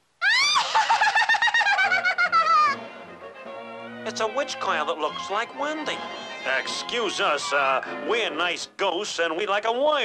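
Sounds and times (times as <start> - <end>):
high-pitched cackling laugh: 0.4 - 2.8.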